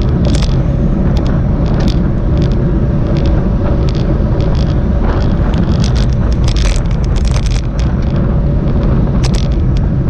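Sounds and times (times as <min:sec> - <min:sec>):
road noise: 0:00.0 - 0:10.0
sharp rattles: 0:00.0 - 0:10.0
wind buffeting microphone: 0:00.0 - 0:10.0.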